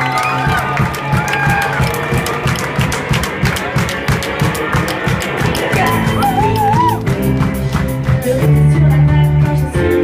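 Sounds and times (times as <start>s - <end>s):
drum kit beat: 0.0s - 10.0s
live band playing: 0.0s - 10.0s.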